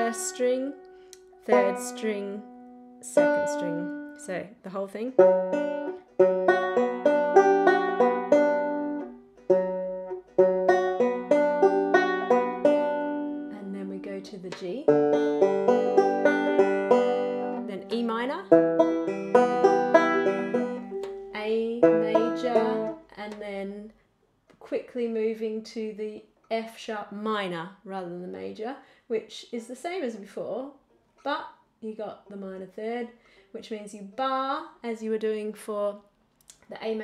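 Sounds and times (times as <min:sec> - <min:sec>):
banjo fingerpicking: 0:00.0 - 0:23.5.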